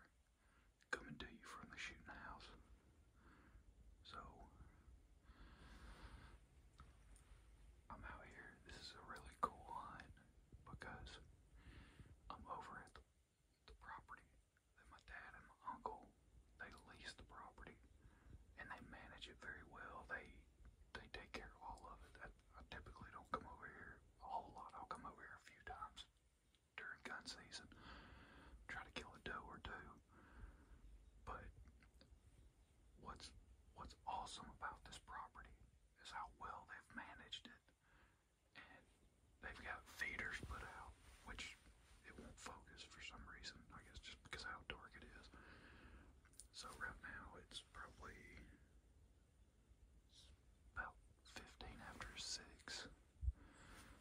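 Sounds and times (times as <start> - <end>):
man whispering: 0.0 - 48.8, 50.0 - 54.0.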